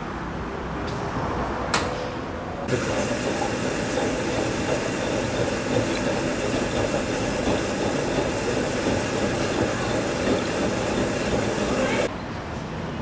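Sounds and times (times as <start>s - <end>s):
loud mechanical rumble: 2.6s - 12.1s
hiss: 2.7s - 12.1s.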